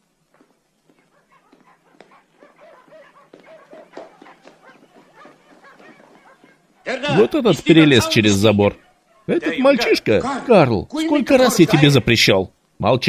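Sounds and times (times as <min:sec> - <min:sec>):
scattered knocks: 0:00.4 - 0:06.8
dog yelping and whining: 0:01.0 - 0:06.7.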